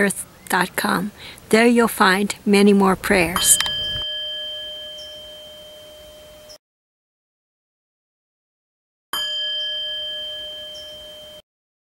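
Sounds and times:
struck metal chime ringing: 3.1s - 6.6s, 9.2s - 11.4s.

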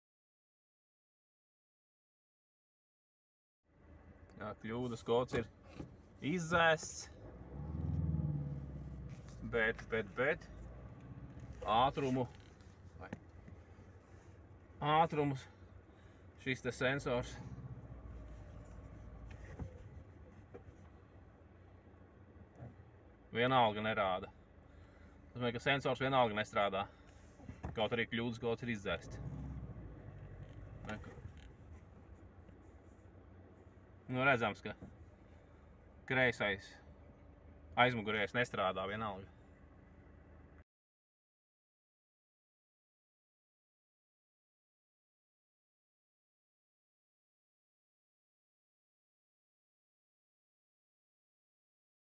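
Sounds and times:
car rumble from inside cabin: 3.8s - 40.6s
car engine accelerating: 6.4s - 13.5s, 16.6s - 21.2s, 28.6s - 33.0s.

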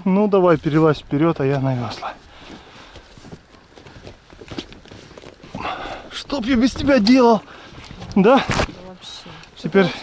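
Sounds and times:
rustling: 0.4s - 9.9s.

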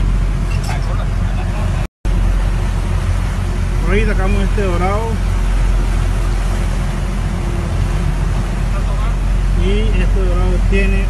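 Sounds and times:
boat engine rumbling: 0.0s - 11.0s.

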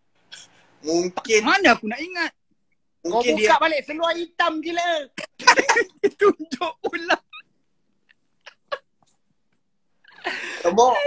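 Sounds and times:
people laughing over phone call: 5.2s - 7.4s.

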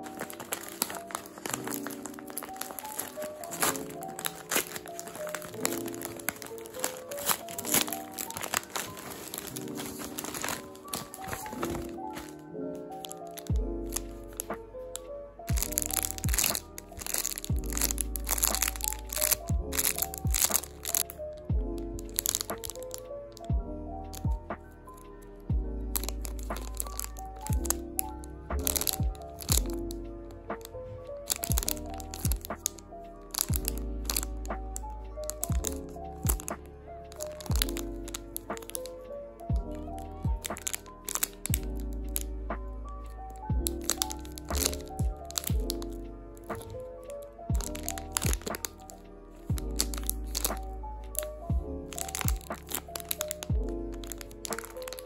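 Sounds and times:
plastic bags crinkling: 0.0s - 55.0s.

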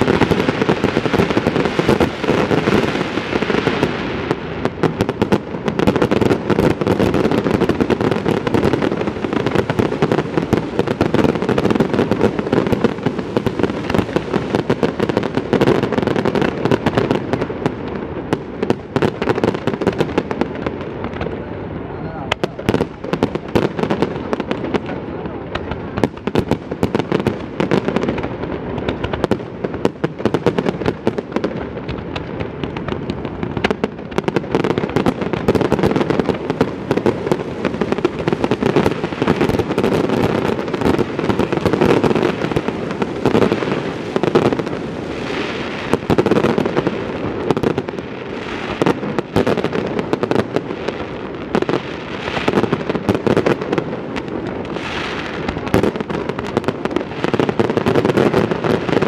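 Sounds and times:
fireworks crackling and popping: 0.0s - 59.0s
crowd chatter: 21.2s - 23.2s.

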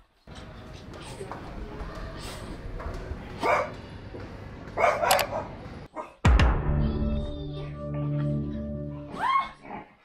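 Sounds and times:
dog barking: 3.4s - 3.8s, 4.8s - 6.2s.

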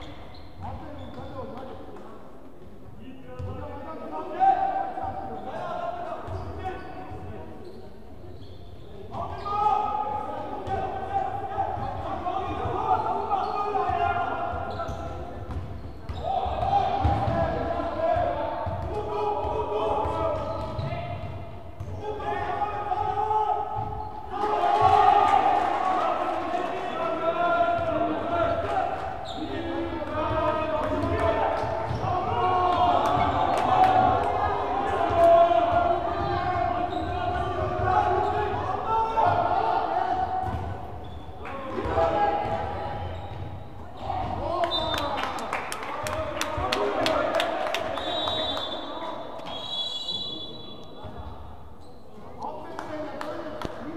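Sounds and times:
spectators shouting and cheering: 24.3s - 29.0s, 30.2s - 40.6s.

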